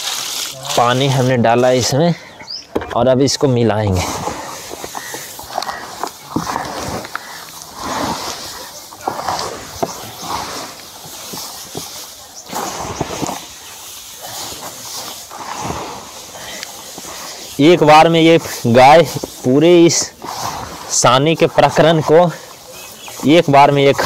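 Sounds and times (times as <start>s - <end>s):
hands mixing wet straw mash: 0.0s - 2.1s, 3.3s - 24.0s.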